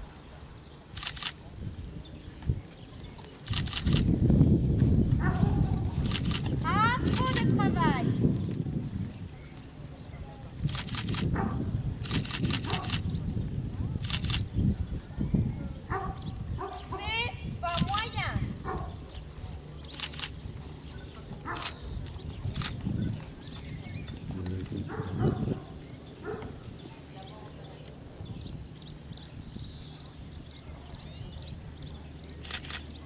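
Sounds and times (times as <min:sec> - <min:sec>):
muffled hoofbeats on sand: 0:04.1 - 0:14.0.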